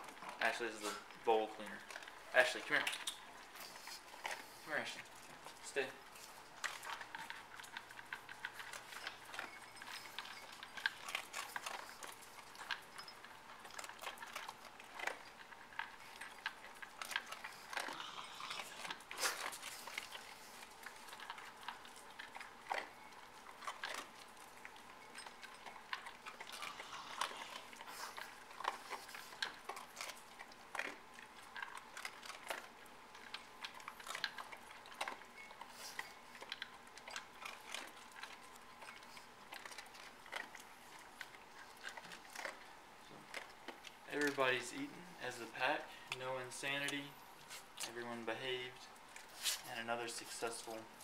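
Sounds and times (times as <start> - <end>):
dogs crunching food: 0.0 - 51.0.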